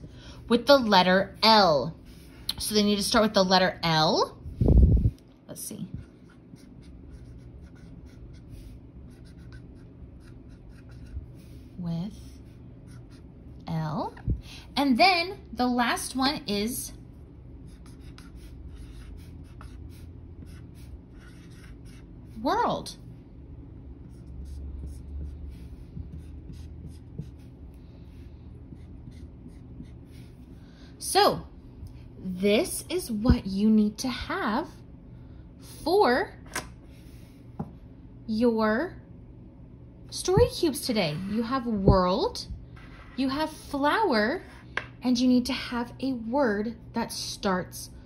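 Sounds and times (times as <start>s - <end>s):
marker writing on whiteboard: 5.8s - 13.3s, 17.6s - 22.5s, 24.0s - 30.5s.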